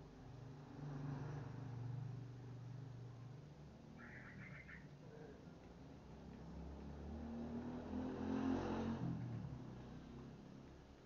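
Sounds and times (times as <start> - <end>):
vehicle engine passing by: 0.4 - 3.1, 6.1 - 11.0.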